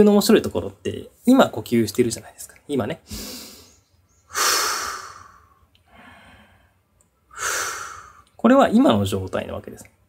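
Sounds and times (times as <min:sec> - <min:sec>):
man breathing out deeply: 0:03.1 - 0:08.3.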